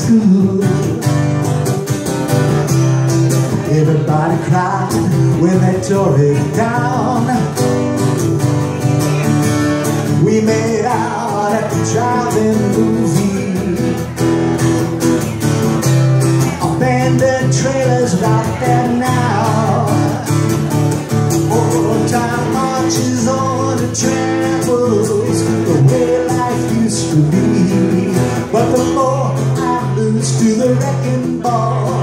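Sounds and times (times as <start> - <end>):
acoustic guitar strumming: 0.0 - 32.0
man singing: 0.0 - 32.0.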